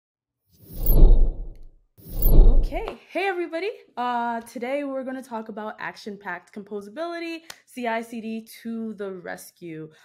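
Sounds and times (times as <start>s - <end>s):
whoosh with deep bass rumble: 0.7s - 2.8s.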